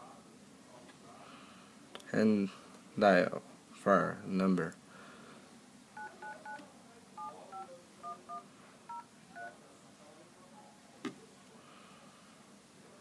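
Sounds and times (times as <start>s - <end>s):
phone dial-pad key tones: 6.0s - 6.6s, 7.2s - 9.5s.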